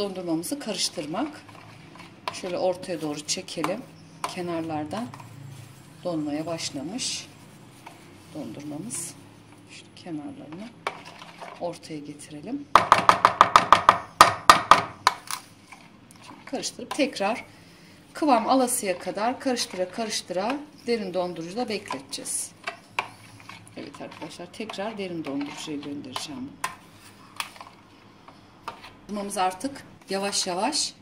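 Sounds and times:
spoon stirring ice cream: 0.0s - 9.7s, 10.3s - 11.8s, 15.1s - 17.6s, 18.2s - 30.8s
metal spoon knocking plastic tub: 12.8s - 15.2s.

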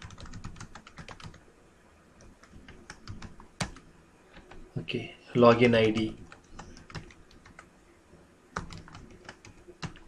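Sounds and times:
faint keyboard typing: 0.0s - 1.4s, 2.2s - 4.7s, 5.4s - 7.7s, 8.6s - 10.0s.

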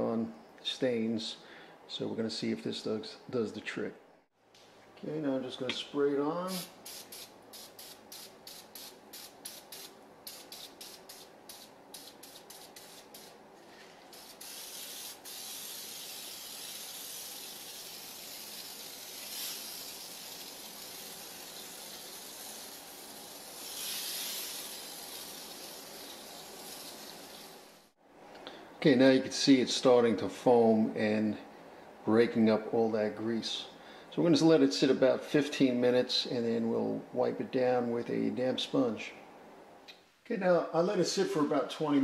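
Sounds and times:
aerosol can spraying: 6.5s - 13.4s, 14.0s - 27.8s.

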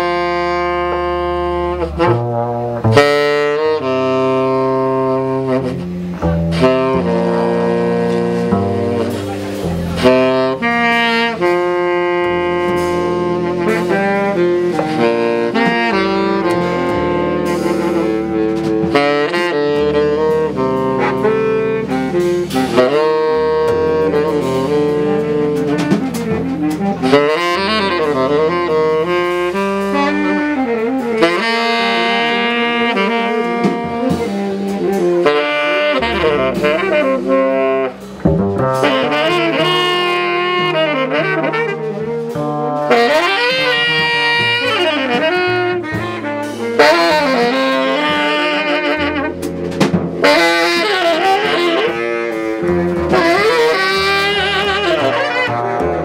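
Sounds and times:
double bass: 0.0s - 56.0s
drum and cymbal strikes: 0.0s - 56.0s
saxophone long held notes: 0.0s - 56.0s.

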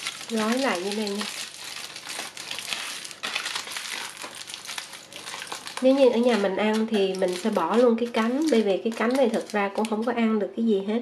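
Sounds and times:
aluminium foil crinkling: 0.0s - 10.2s.

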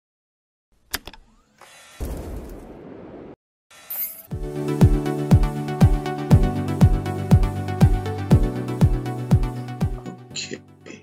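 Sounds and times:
intro music: 4.3s - 10.4s.

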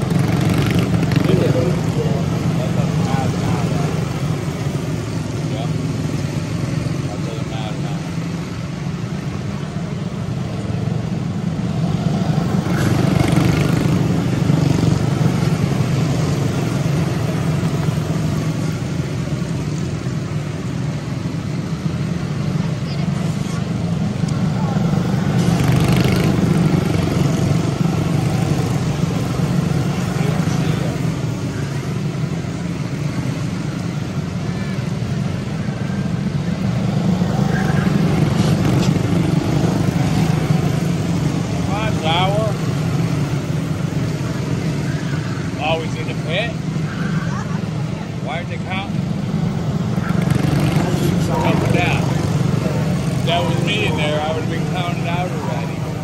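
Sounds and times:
small race car engines buzzing: 0.0s - 56.0s.

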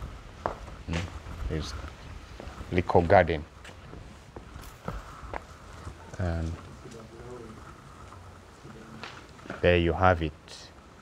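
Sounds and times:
footsteps: 0.0s - 10.0s.

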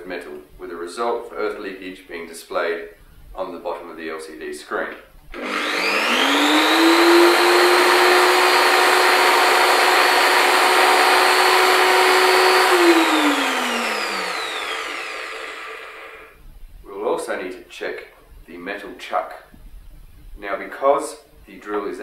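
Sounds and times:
electric drill motor whine: 5.3s - 16.4s.

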